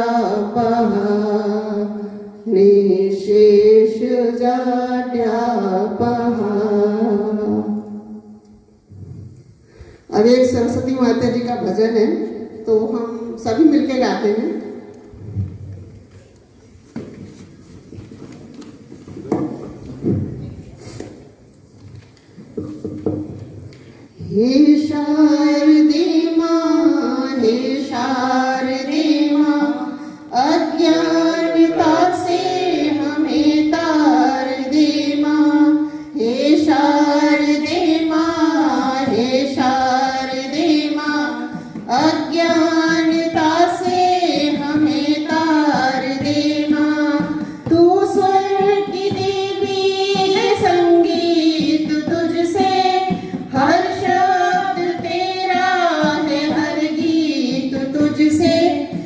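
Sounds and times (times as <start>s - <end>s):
women singing devotional song: 0.0s - 15.6s, 23.0s - 59.0s.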